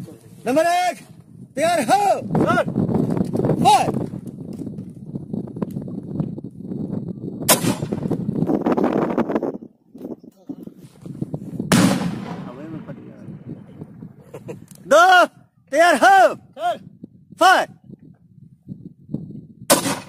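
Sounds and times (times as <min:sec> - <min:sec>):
rifle shot with echo: 0:07.5 - 0:08.1, 0:11.7 - 0:13.2, 0:19.7 - 0:20.0
grenade blast with echo: 0:07.5 - 0:08.2, 0:11.7 - 0:13.7, 0:19.7 - 0:20.0.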